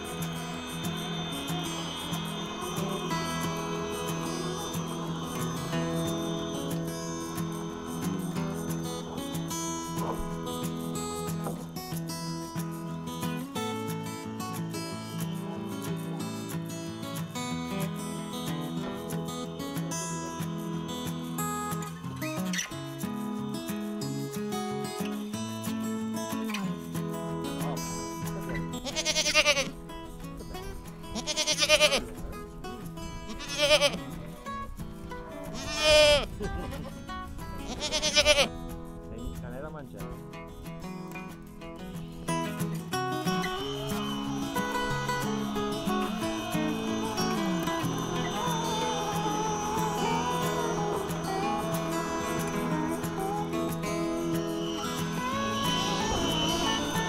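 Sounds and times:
acoustic guitar music: 0.0s - 57.0s
goat bleating: 28.8s - 29.8s, 31.2s - 32.1s, 33.3s - 34.1s, 35.5s - 36.3s, 37.6s - 38.5s.

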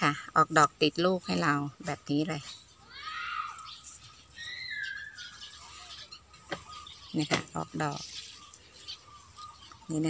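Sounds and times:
bird calling: 2.3s - 10.0s.

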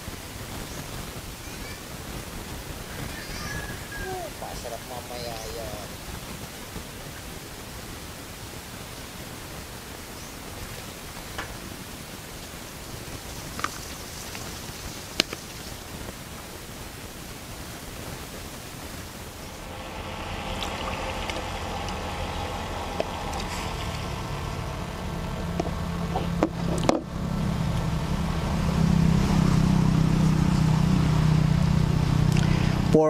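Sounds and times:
low engine-like drone: 19.0s - 33.0s.

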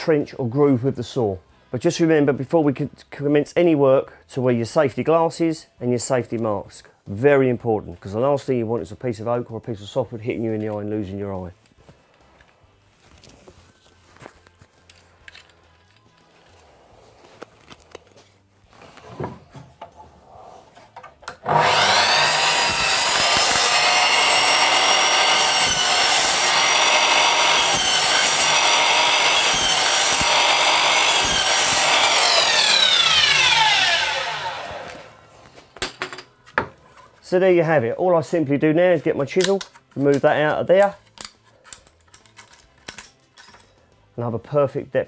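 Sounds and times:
faint rustles and clicks: 11.6s - 21.0s
mitre saw cutting wood: 21.4s - 35.2s.

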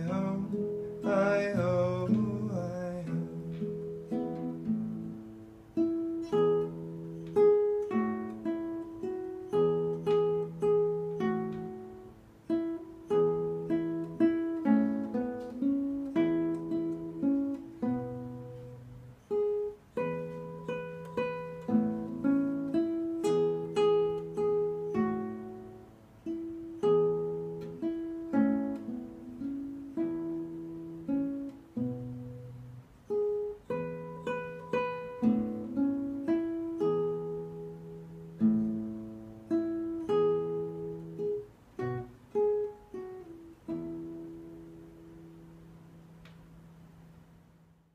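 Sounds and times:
fingerstyle nylon-string guitar: 0.0s - 47.9s.

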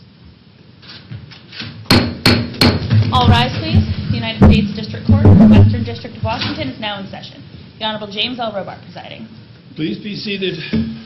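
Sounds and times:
sharp knocks: 1.9s - 6.6s.

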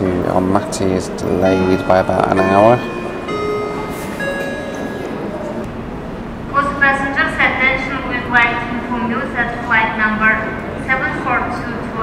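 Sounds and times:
two-tone chime: 1.4s - 5.7s.

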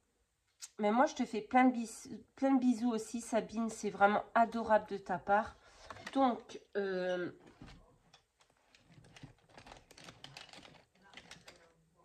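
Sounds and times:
paper rustling: 7.5s - 11.8s.

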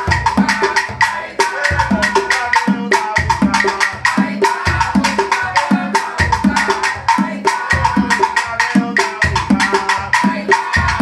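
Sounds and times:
conga drums played by hand: 0.0s - 11.0s
fast stick pattern: 0.0s - 11.0s
wooden cajon played by hand: 0.0s - 11.0s.

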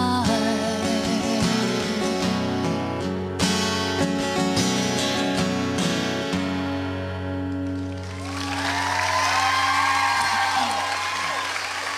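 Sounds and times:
acoustic guitar chord ringing: 0.2s - 8.0s
audience applause and cheering: 7.6s - 11.9s.

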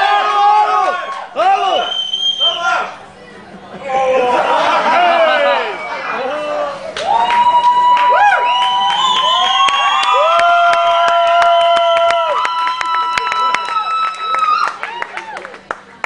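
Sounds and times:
crowd cheering and shouting: 0.0s - 3.0s, 3.8s - 15.6s
hand claps: 7.0s - 16.0s.

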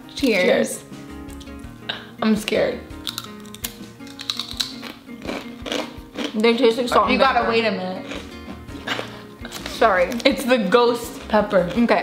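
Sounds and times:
background music: 0.0s - 12.0s
potato chips crunching: 3.0s - 6.6s, 8.0s - 12.0s.

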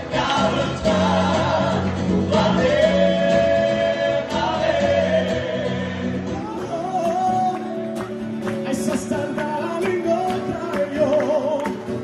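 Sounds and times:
men's choir singing a hymn: 0.0s - 6.5s.

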